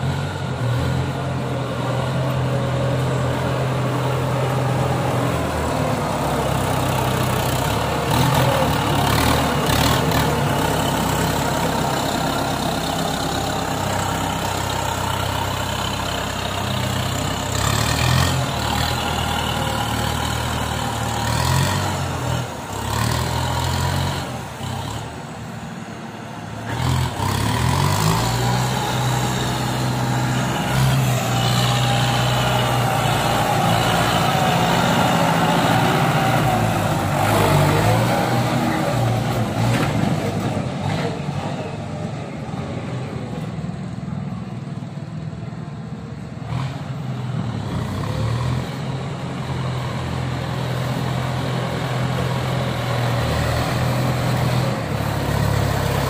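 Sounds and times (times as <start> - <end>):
tractor diesel engine: 0.0 - 56.0.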